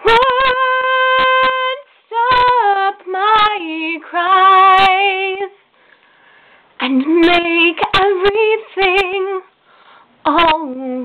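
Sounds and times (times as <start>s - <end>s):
woman singing a ballad: 0.0s - 5.6s, 6.8s - 9.5s, 10.2s - 11.0s.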